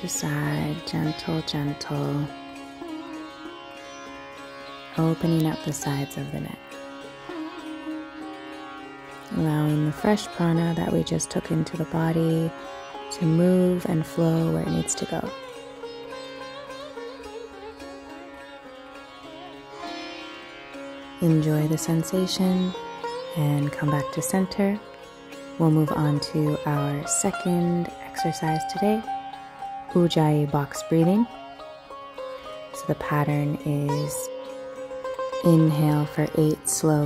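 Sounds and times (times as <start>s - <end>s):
droning string music: 0.0s - 37.0s
plucked notes bending in pitch: 0.0s - 37.0s.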